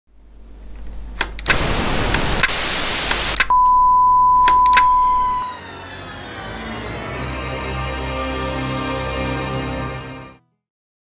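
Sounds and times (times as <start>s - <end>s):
static hum: 0.1s - 5.5s
loud static hiss: 0.2s - 3.5s
steady high beep: 3.5s - 5.6s
theme music: 4.4s - 10.4s.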